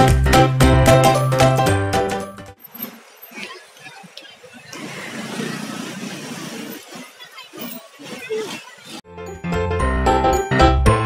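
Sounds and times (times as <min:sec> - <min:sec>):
steady outdoor rushing noise: 0:02.6 - 0:09.0.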